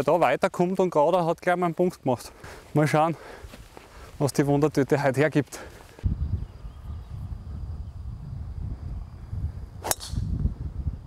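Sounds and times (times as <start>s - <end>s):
golf club striking ball: 9.8s - 10.3s.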